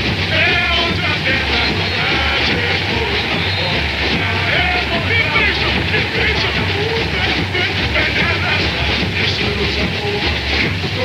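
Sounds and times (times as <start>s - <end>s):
crowd singing: 0.0s - 11.0s
crowd yelling: 0.0s - 11.0s
samba drums: 0.0s - 11.0s.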